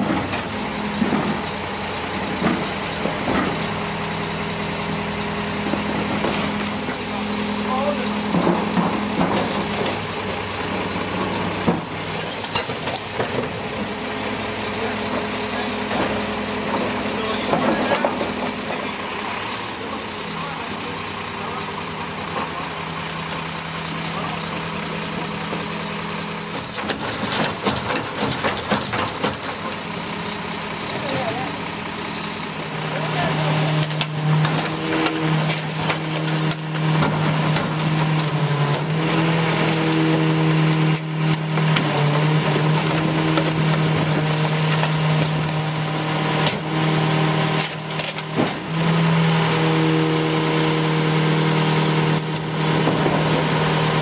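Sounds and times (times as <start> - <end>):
garbage truck engine and packer hum: 0.0 - 54.0
trash banging and clattering: 0.0 - 54.0.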